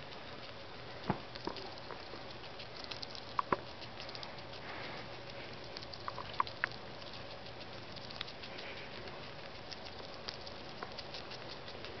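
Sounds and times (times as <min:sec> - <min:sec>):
rat crunching food: 0:00.0 - 0:12.0
rat nibbling clicks: 0:00.0 - 0:12.0.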